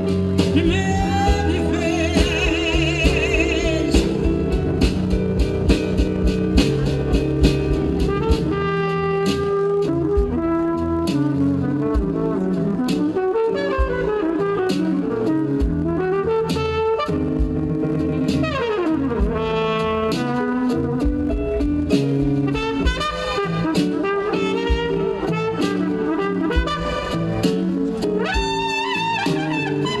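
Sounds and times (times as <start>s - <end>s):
drum kit strokes: 0.0s - 30.0s
electric keyboard chords: 0.0s - 30.0s
trumpet melody: 0.0s - 30.0s.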